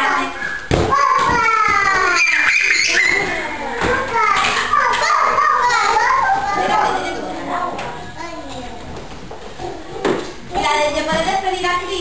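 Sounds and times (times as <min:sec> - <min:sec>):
young children playing and chattering: 0:00.0 - 0:12.0.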